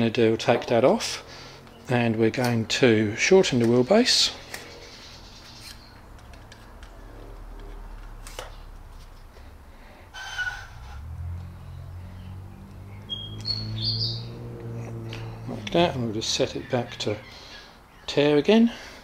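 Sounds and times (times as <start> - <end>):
high bird chirps: 11.6 - 14.4.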